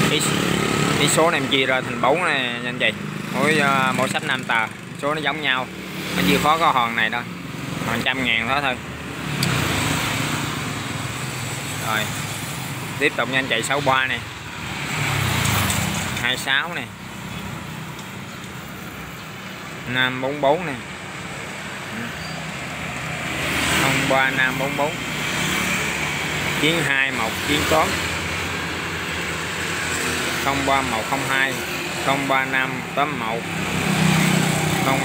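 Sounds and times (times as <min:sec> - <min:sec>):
vehicle passing on road: 0:00.0 - 0:35.0.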